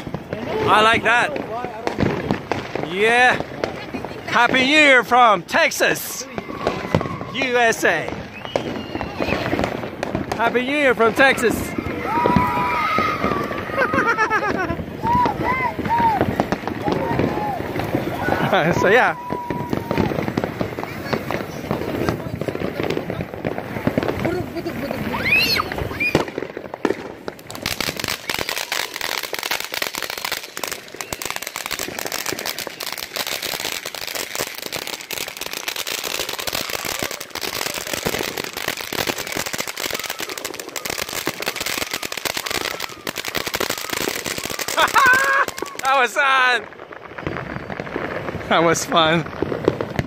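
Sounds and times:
people's voices: 0.0 - 26.4
firework fountain crackling: 0.0 - 50.0.

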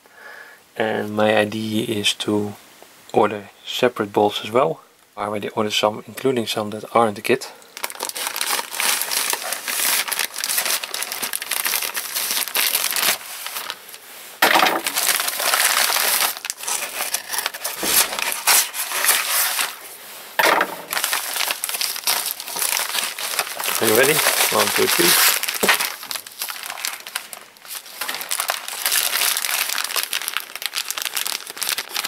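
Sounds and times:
plastic and paper crinkling: 7.6 - 32.0
scissors cutting plastic: 14.8 - 19.8.

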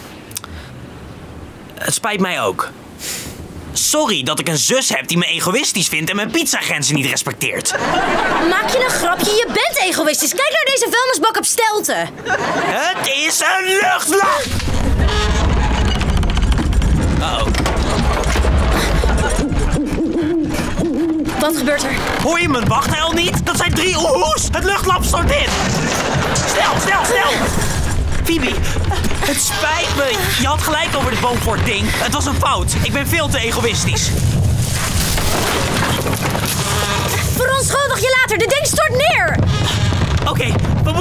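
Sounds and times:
falling debris: 14.1 - 41.0
wood cracking and splintering: 14.4 - 20.2, 21.4 - 41.0
low rumble: 14.4 - 38.6.

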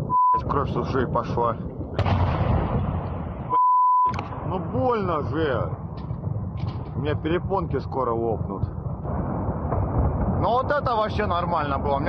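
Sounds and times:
high censor bleep: 0.0 - 0.4, 3.5 - 4.2
rumbling explosion blast: 0.0 - 12.0.

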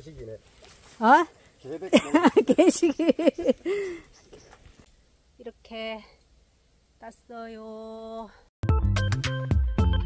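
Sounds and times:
woman laughing: 1.9 - 4.0.

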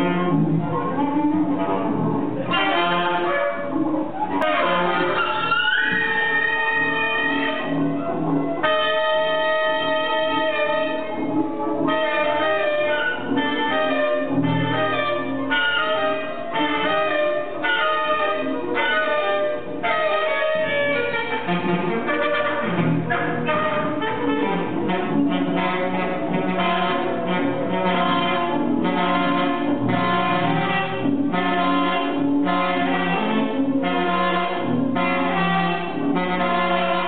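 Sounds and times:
double bass: 0.0 - 37.0
saxophones playing: 0.0 - 37.0.

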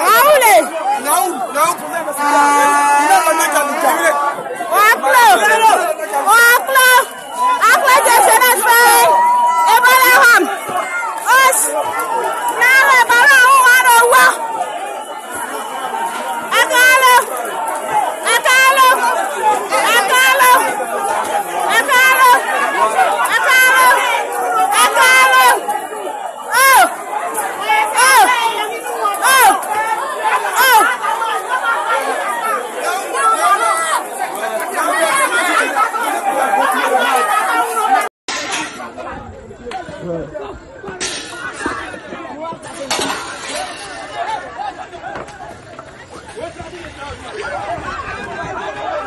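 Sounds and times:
crowd shouting and yelling: 0.0 - 49.0.

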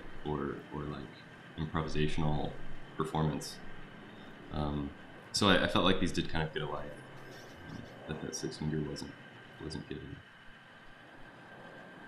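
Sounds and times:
faint steady hiss: 0.0 - 12.0
thin high whine: 0.0 - 12.0.

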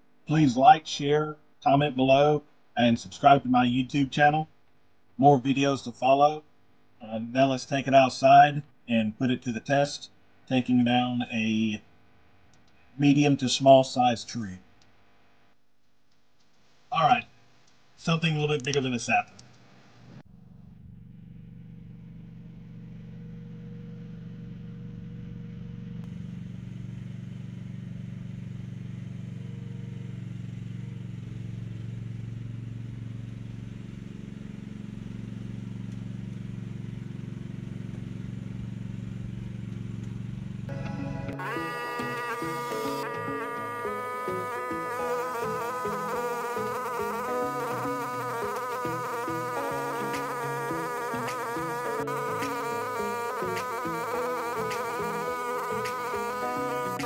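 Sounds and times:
small engine running: 20.3 - 57.0
buzzy background music: 40.7 - 57.0.

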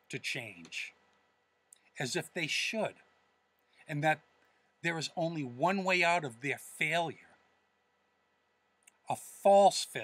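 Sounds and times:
man speaking: 0.0 - 1.0, 1.8 - 3.1, 3.8 - 7.4, 9.0 - 10.0
faint steady hum: 0.0 - 10.0.

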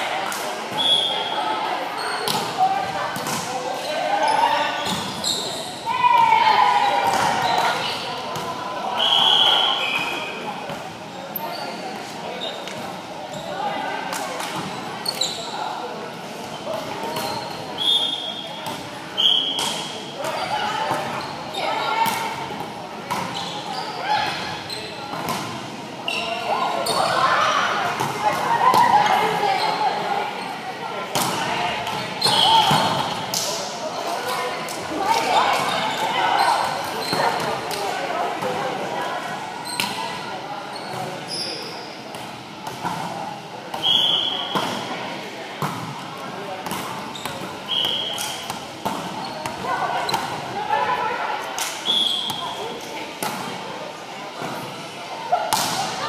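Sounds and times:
sneakers squeaking on court: 4.2 - 5.9, 14.6 - 15.6, 16.4 - 27.2, 31.9 - 33.3, 35.3 - 37.7, 39.6 - 41.8, 46.6 - 50.5, 52.0 - 52.7.

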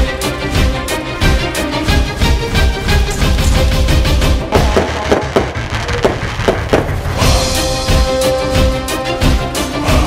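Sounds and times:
music: 0.0 - 10.0
fireworks banging: 3.0 - 7.6.

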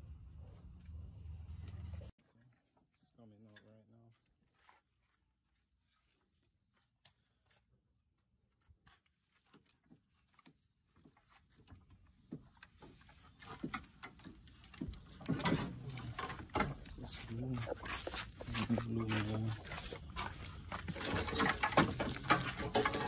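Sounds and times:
person speaking: 15.5 - 22.0.

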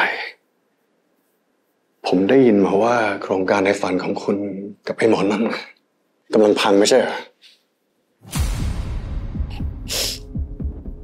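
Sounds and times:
man speaking: 2.0 - 7.4.

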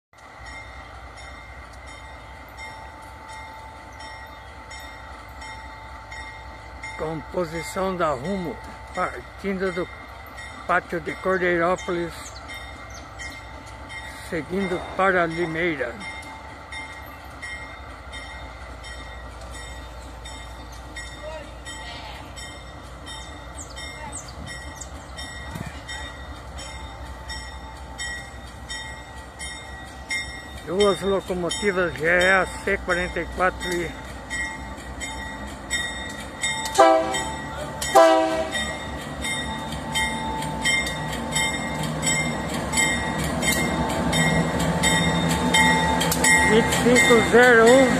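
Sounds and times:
locomotive engine rumble: 0.2 - 47.9.

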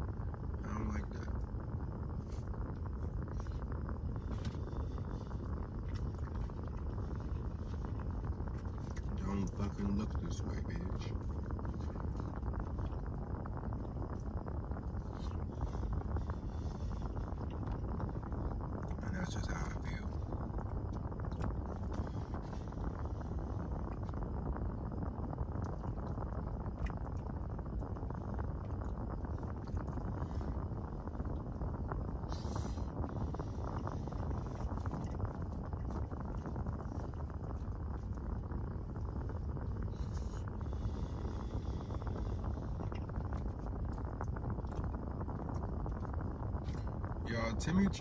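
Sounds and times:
low rumble inside car: 0.0 - 48.0.

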